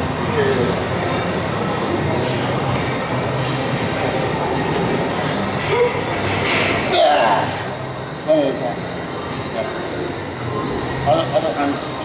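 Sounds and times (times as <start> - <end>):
gym hall rumbling: 0.0 - 12.0.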